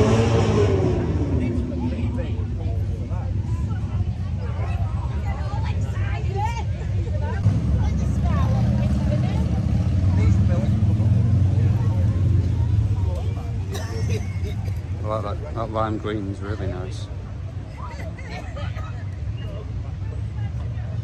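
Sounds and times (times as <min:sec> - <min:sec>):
chatter of voices: 0:00.0 - 0:21.0.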